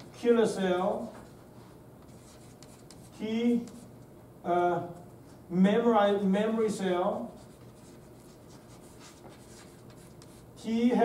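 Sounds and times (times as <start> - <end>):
chalk ticking: 2.0 - 3.9, 7.4 - 10.5
chalk writing on a blackboard: 2.0 - 3.9, 7.3 - 10.5.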